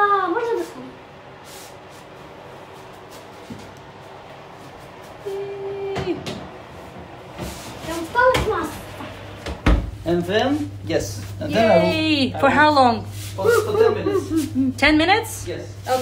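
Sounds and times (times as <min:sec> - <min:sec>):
oven door opening: 0:06.0 - 0:10.2.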